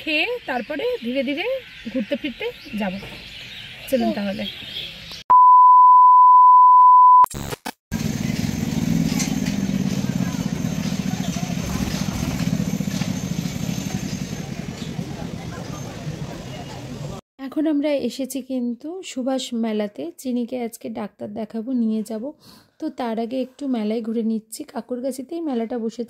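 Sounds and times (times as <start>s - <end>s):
loud steady beep tone: 5.3s - 7.3s
crowd chattering: 13.6s - 17.2s.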